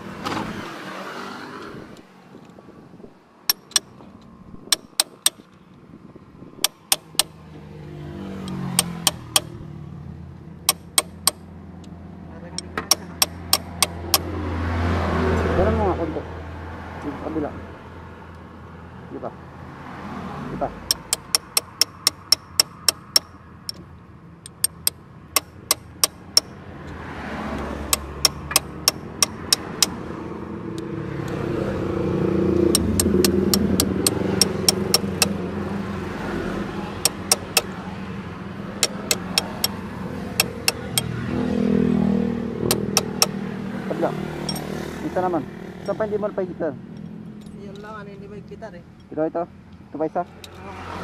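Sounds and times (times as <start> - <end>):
motor vehicle passing: 0.0 - 51.0
wrench clicking: 3.5 - 4.0, 4.6 - 5.6, 6.6 - 7.4, 8.4 - 9.6, 10.7 - 12.0, 12.6 - 14.3, 20.9 - 23.8, 24.4 - 26.6, 27.9 - 30.0, 32.6 - 35.4, 37.0 - 37.7, 38.8 - 39.8, 40.4 - 41.1, 42.7 - 43.4, 44.5 - 44.7.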